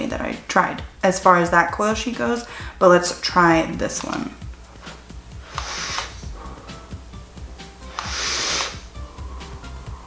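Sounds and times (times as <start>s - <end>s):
background music with beat: 4.4s - 10.0s
vape puff rushing hiss: 4.8s - 6.8s, 7.8s - 9.0s.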